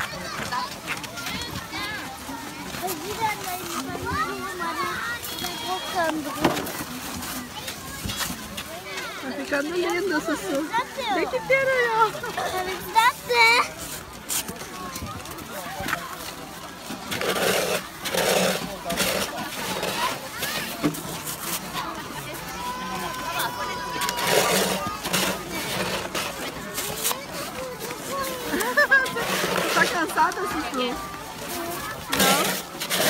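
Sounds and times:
voices chattering: 0.0 - 33.0
snow crunching and scraping: 24.2 - 33.0.

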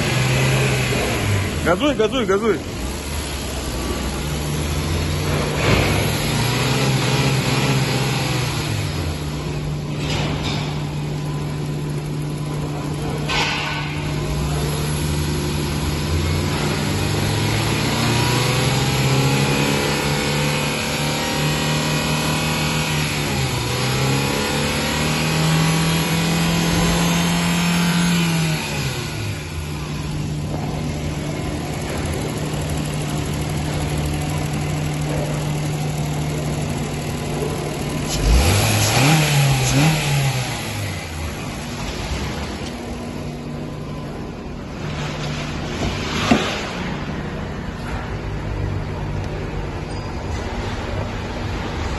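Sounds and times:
car engine revving: 0.0 - 13.3, 14.0 - 48.1.

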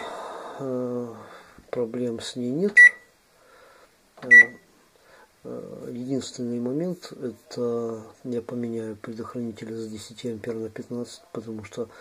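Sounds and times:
microwave high-pitched beep: 2.8 - 3.1, 4.3 - 4.6.

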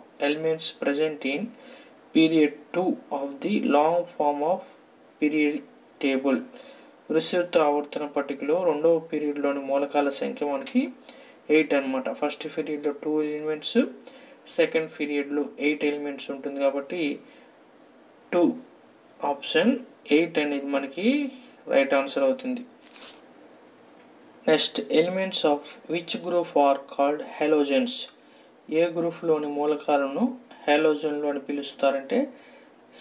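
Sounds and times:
man speaking: 0.2 - 17.2, 18.3 - 18.6, 19.2 - 23.2, 24.4 - 32.4.

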